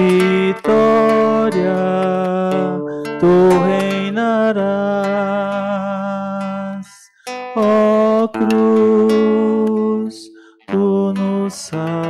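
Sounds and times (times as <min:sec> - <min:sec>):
acoustic guitar: 0:00.0 - 0:12.0
person singing a long note: 0:07.7 - 0:12.0.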